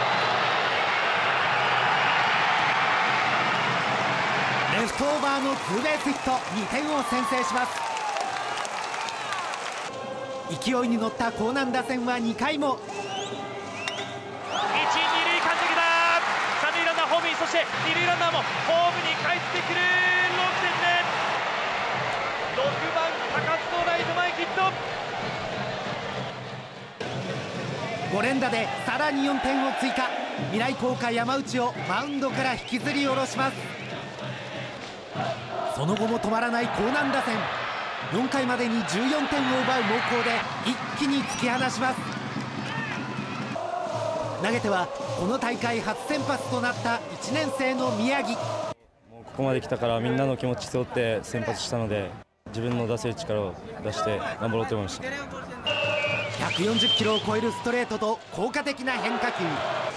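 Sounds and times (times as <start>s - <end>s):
crowd cheering: 0.0s - 11.6s, 12.8s - 48.8s, 53.9s - 59.9s.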